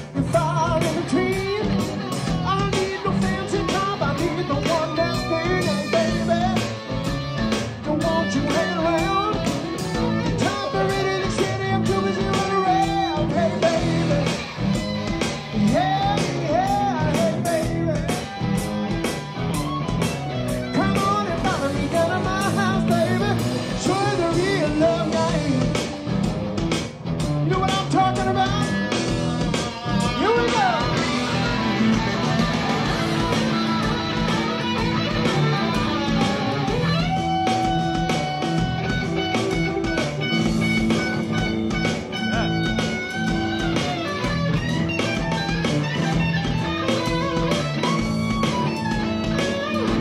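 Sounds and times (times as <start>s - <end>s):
man singing: 0.0s - 7.0s, 7.7s - 14.6s, 15.5s - 18.5s, 20.6s - 26.0s, 27.4s - 33.8s
live rock band playing: 0.0s - 50.0s.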